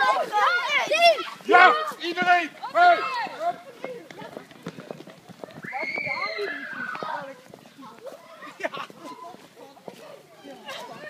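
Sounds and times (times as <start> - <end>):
footsteps on brick path: 0.0 - 11.0.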